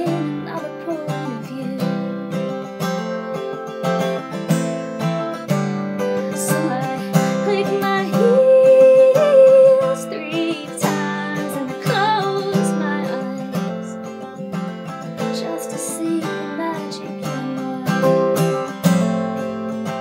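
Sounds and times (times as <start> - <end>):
woman singing: 0.0 - 2.7, 6.0 - 20.0
acoustic guitar strumming: 0.0 - 20.0.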